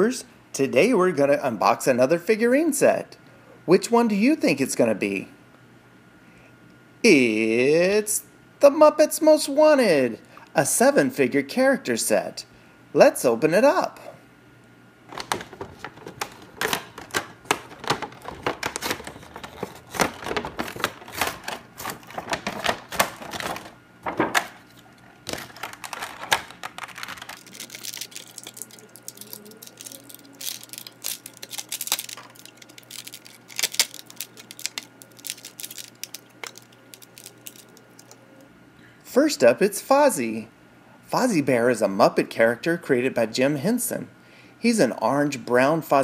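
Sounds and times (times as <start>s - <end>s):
plastic tearing and crinkling: 15.1s - 38.2s
plastic packaging crackling and clicking: 15.1s - 38.4s.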